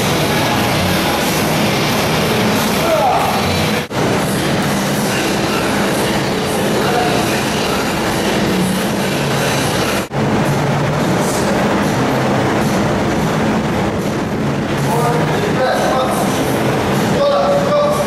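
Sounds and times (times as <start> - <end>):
industrial floor fan rushing air: 0.0 - 18.0.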